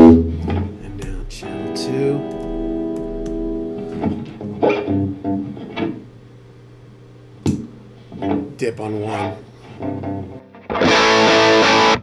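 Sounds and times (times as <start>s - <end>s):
sharp guitar pick strike: 0.0s - 5.2s
electric guitar picked notes: 0.0s - 6.1s, 8.2s - 12.0s.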